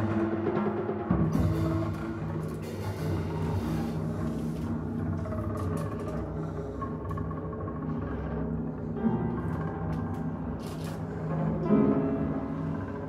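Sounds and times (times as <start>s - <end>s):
drum kit strokes: 0.0s - 4.7s
bowed double bass: 0.0s - 13.0s.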